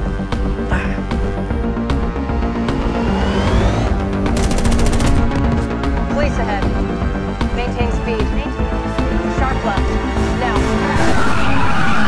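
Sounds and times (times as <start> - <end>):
dramatic film score: 0.0 - 12.0
automatic rifle fire: 4.3 - 5.5.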